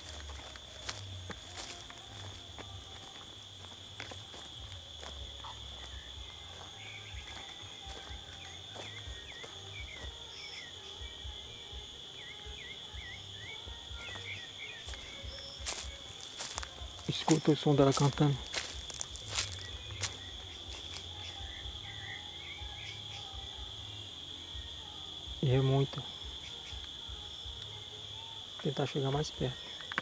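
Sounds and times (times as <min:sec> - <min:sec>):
footsteps on dry leaves: 0:00.0 - 0:10.2, 0:14.0 - 0:21.6
thrush singing: 0:00.0 - 0:18.1, 0:18.9 - 0:28.6
high insect drone: 0:00.0 - 0:30.0.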